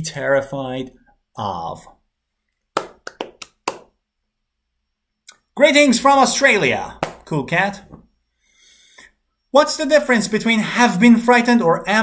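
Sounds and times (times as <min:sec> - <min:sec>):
hand claps: 0:02.8 - 0:04.0, 0:07.0 - 0:07.3.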